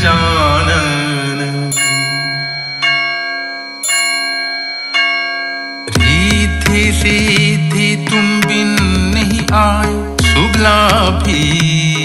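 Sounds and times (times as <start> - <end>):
bell-like chime: 0.0 - 9.2, 10.2 - 11.5
devotional song: 0.0 - 12.0.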